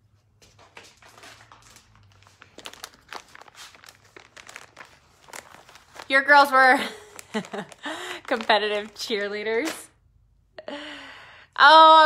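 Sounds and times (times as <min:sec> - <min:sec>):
plastic packet crinkling: 0:01.1 - 0:09.9.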